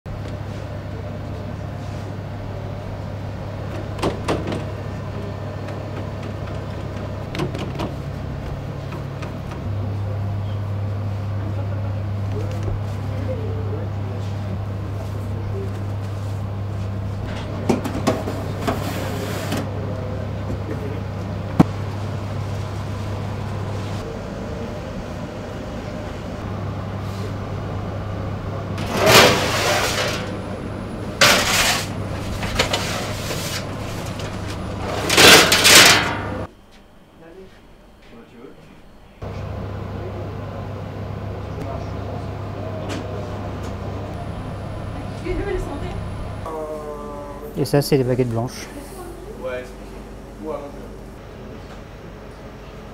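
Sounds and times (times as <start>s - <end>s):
machine motor hum: 0.1s - 36.5s, 39.2s - 52.9s.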